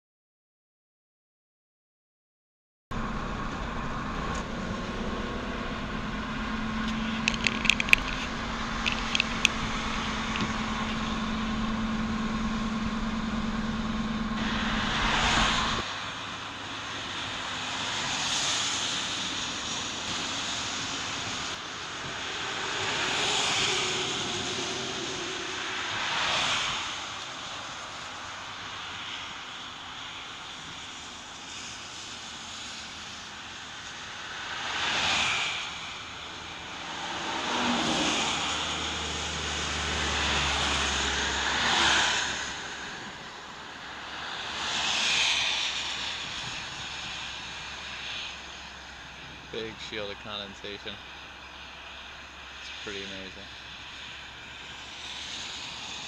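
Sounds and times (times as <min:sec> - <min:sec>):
car road and tyre noise: 0:02.9 - 0:56.0
vehicles whooshing past: 0:03.0 - 0:56.0.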